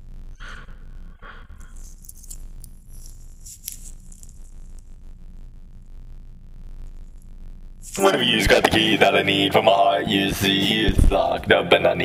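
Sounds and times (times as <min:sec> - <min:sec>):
low steady rumble: 0:00.0 - 0:11.7
rustling and crackling: 0:01.5 - 0:08.0.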